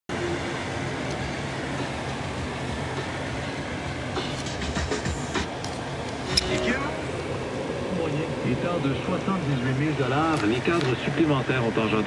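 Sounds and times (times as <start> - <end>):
car cabin road noise: 0.1 - 12.0.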